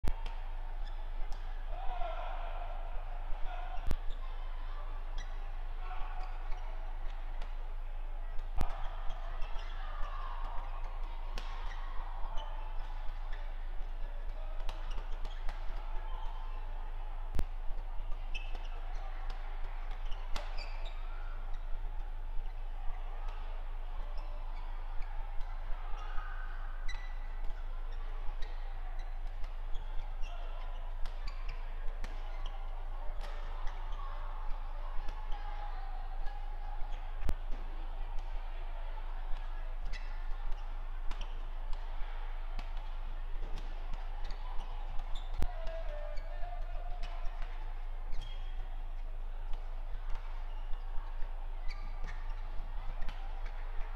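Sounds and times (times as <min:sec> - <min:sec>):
shoes squeaking on court floor: 0:08.8 - 0:13.9, 0:14.6 - 0:16.6, 0:18.1 - 0:22.6, 0:26.9 - 0:34.2, 0:39.8 - 0:41.8, 0:43.5 - 0:45.5, 0:48.1 - 0:48.7, 0:51.6 - 0:53.9.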